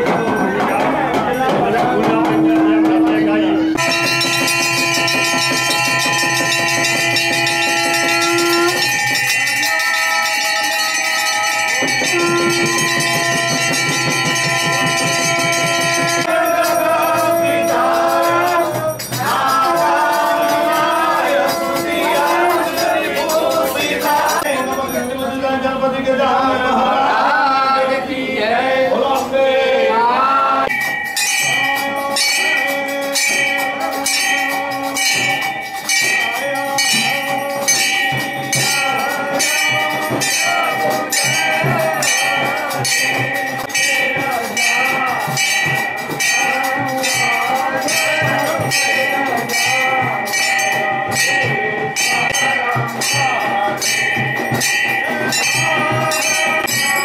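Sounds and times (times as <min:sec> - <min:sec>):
brass bells clanging: 0:00.0 - 0:25.8, 0:30.6 - 0:57.0
chanting voices: 0:00.0 - 0:57.0.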